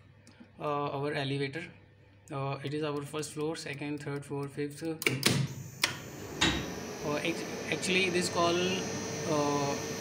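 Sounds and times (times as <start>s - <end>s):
steady hum: 5.5s - 10.0s.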